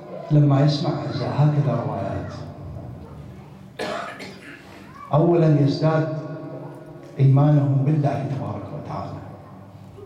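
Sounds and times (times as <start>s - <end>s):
person coughing: 3.8s - 4.8s.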